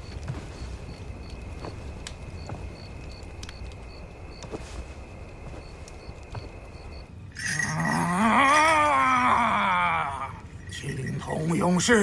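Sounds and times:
wordless vocal cry with vibrato: 7.6 - 10.4.

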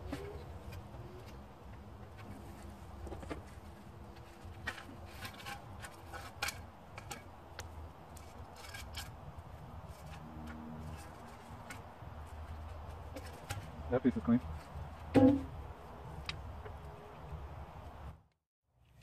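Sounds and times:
metal scrap clicking and scraping: 2.2 - 13.8.

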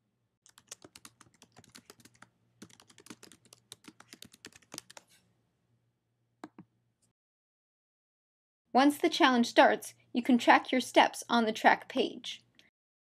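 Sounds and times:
computer keyboard typing: 0.4 - 5.2.

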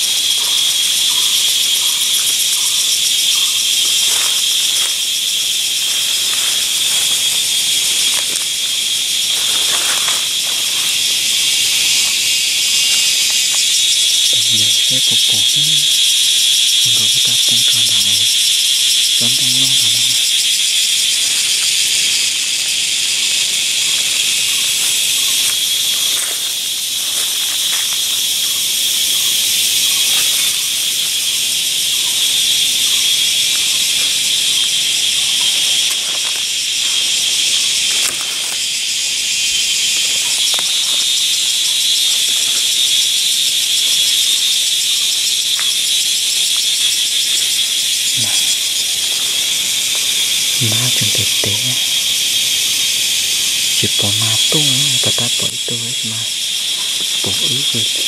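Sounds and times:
rustles of undergrowth: 0.0 - 51.8, 52.6 - 58.0
cicadas buzzing: 0.0 - 58.0.

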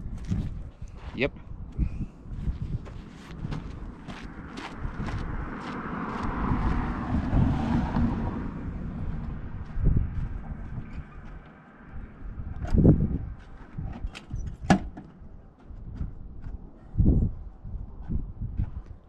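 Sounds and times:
footsteps on dirt: 0.0 - 1.4, 2.4 - 7.0, 9.1 - 11.9, 13.2 - 13.9
wind buffeting microphone: 0.0 - 19.0.

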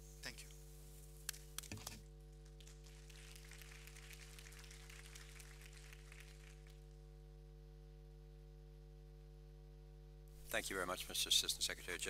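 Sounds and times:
steady low hum: 0.0 - 12.0
faint applause: 2.6 - 6.9.

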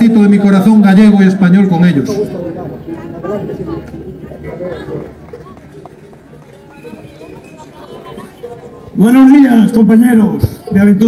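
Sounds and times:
distant voices: 0.0 - 11.0
low background noise: 0.0 - 11.0.

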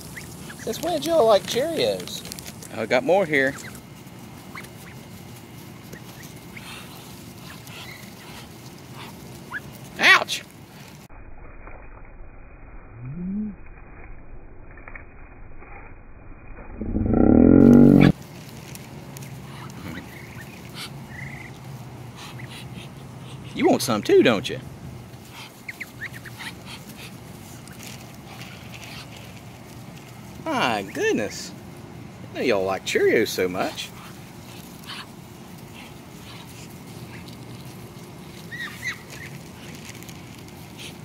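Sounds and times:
ducks peeping: 0.0 - 10.2, 19.2 - 24.4, 25.0 - 31.6, 32.5 - 41.0
duck low rising call: 16.8 - 18.2
duck squeal: 38.4 - 39.3.

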